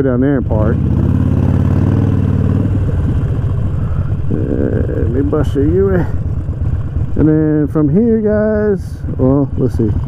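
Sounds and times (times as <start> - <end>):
motorcycle engine loping: 0.0 - 10.0.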